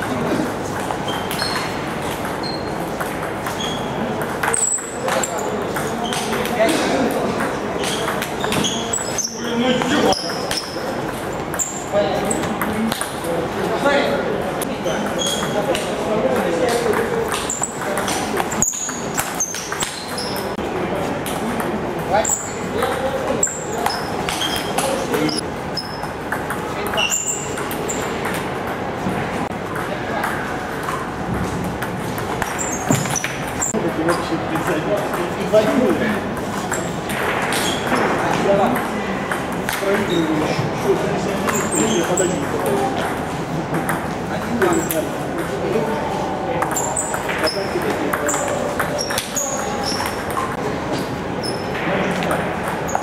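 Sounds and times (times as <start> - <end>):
table tennis ball hits: 0.8 - 13.3, 15.1 - 20.5, 25.8 - 33.7
people's voices: 3.0 - 25.5.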